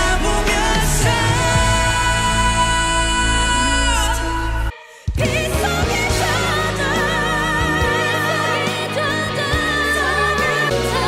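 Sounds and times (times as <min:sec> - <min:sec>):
pop backing track: 0:00.0 - 0:11.0.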